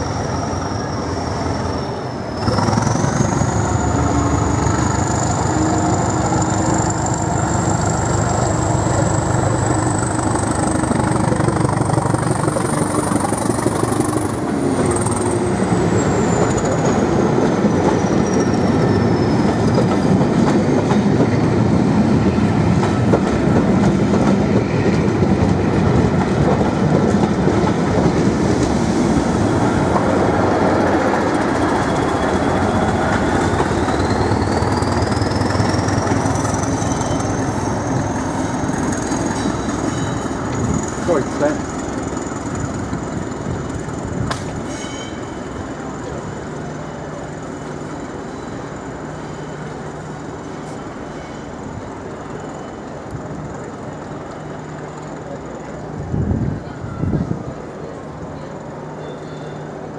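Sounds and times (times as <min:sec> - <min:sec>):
train wheels clattering on rails: 0:02.4 - 0:57.1.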